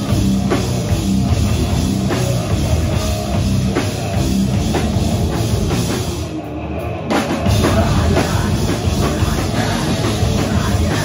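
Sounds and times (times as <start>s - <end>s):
hardcore band playing: 0.0s - 11.0s.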